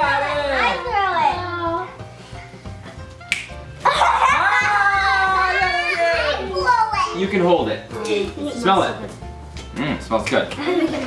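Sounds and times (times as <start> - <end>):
sharp clap: 3.2 - 3.6.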